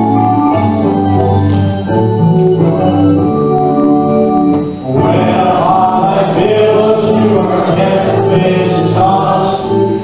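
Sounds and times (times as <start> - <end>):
organ chords: 0.0 - 10.0
voices singing a hymn: 4.9 - 10.0.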